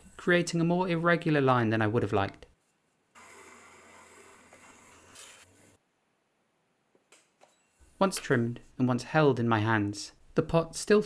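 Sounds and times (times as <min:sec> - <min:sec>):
trimming tool scraping clay: 0:03.2 - 0:05.7.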